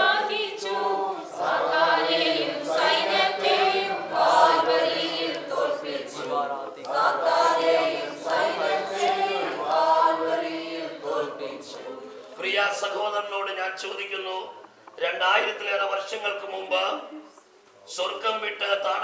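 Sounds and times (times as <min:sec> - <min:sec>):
group singing unaccompanied: 0:00.0 - 0:12.4.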